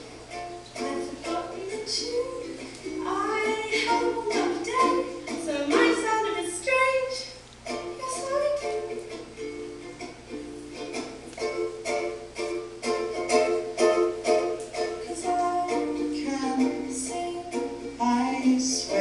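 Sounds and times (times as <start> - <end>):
song with strummed strings: 0.0 - 7.0, 7.6 - 19.0.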